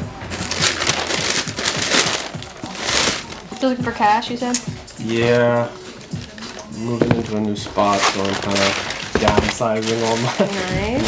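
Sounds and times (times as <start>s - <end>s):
paper rustling and crinkling: 0.0s - 3.7s, 5.0s - 11.0s
background music: 0.0s - 11.0s.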